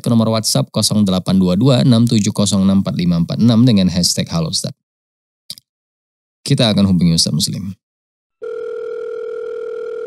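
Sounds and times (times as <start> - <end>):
telephone ringback tone: 8.4 - 10.0.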